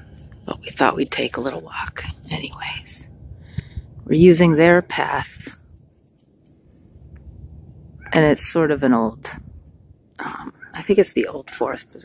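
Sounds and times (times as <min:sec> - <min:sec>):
soft clicks and rustles: 0:00.0 - 0:02.8, 0:05.4 - 0:07.5
faint low rumble: 0:00.0 - 0:12.0.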